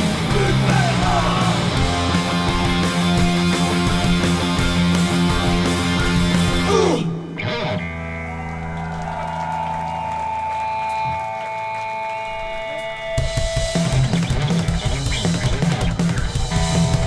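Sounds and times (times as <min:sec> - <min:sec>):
drums crashing: 0:00.0 - 0:06.8, 0:13.2 - 0:17.0
punk band playing live: 0:00.0 - 0:08.0, 0:10.9 - 0:17.0
electric guitars ringing: 0:00.0 - 0:17.0.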